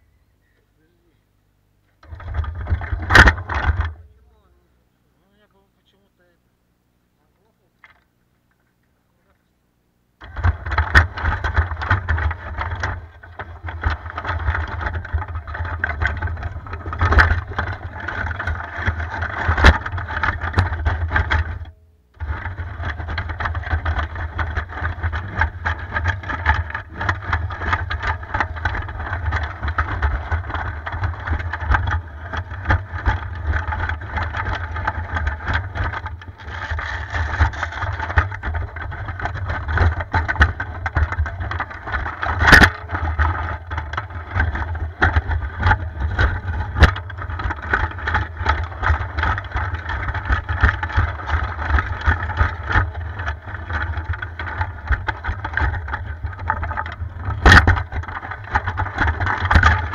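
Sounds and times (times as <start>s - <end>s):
tracks clicking and clattering: 1.9s - 4.4s, 10.2s - 59.9s.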